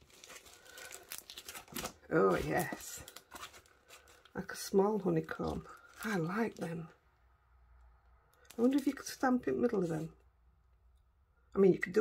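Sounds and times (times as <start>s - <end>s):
plastic packaging crinkling: 0.0s - 6.8s.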